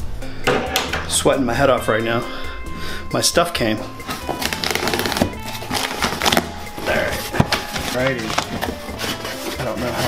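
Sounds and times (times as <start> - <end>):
background music: 0.0 - 10.0
cardboard box being opened: 4.1 - 10.0.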